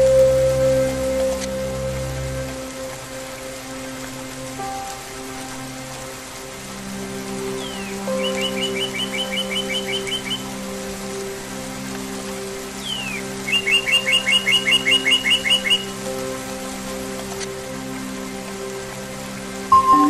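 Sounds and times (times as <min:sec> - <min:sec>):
soft sustained music chords: 0:00.0 - 0:20.0
songbird whistling and chirping: 0:07.6 - 0:10.4, 0:12.8 - 0:15.9, 0:19.7 - 0:20.0.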